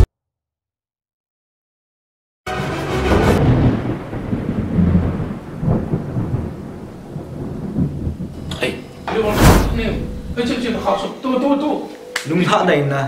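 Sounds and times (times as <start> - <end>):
rain: 3.4 - 9.1
rolling thunder: 3.4 - 11.0.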